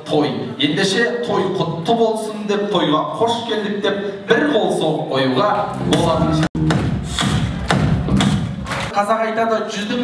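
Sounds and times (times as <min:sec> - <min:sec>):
thumping beat: 0:05.7 - 0:08.9
people clapping in time: 0:05.7 - 0:09.0.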